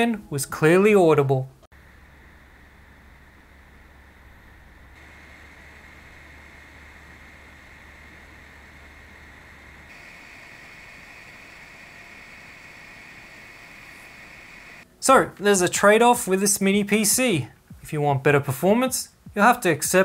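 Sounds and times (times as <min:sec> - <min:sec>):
computer cooling fan whirring: 0:01.8 - 0:15.2.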